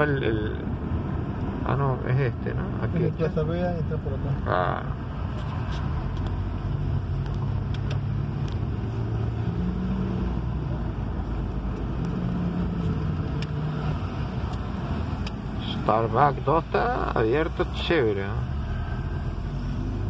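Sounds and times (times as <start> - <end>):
car engine hum: 0.0 - 20.0
road noise inside car: 0.0 - 20.0.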